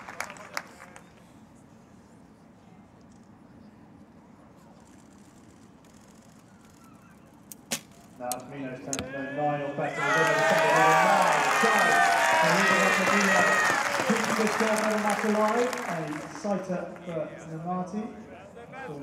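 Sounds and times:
applause: 0.0s - 1.3s, 10.0s - 17.2s
spectators shouting and cheering: 9.1s - 15.5s.

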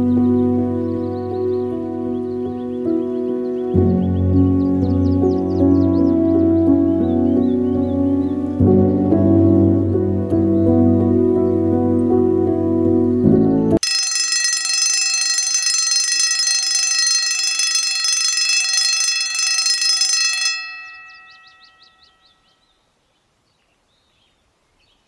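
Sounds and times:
soft piano music: 0.0s - 13.8s
timer alarm bell ringing: 13.8s - 22.5s.

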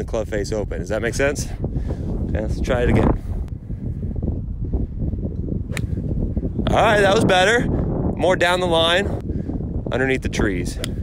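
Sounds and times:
wind rumble on microphone: 0.0s - 11.0s
golf club striking ball: 5.4s - 6.0s.

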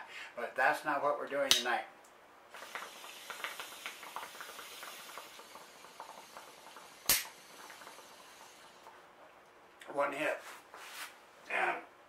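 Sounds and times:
jet lighter hissing: 2.5s - 8.9s
water bubbling in bong: 2.5s - 9.0s
lighter click: 7.1s - 7.3s.

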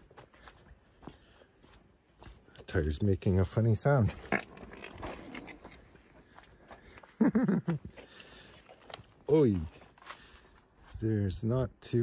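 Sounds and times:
footsteps on dry grass: 0.0s - 2.6s, 7.9s - 11.1s.

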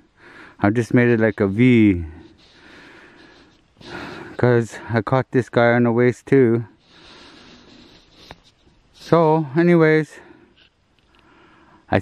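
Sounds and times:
man breathing close to microphone: 0.0s - 0.6s, 1.3s - 4.4s, 6.7s - 9.2s, 10.2s - 11.9s.

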